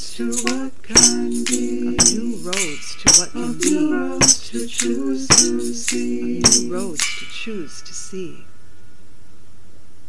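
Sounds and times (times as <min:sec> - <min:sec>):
metallic chime ringing: 0:01.0 - 0:09.0.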